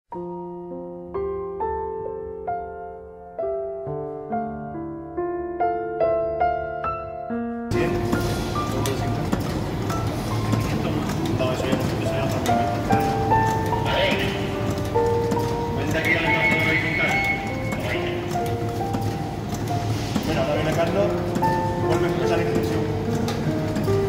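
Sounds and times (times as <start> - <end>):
conveyor machine clattering: 7.7 - 24.0
melody playing: 12.0 - 20.0.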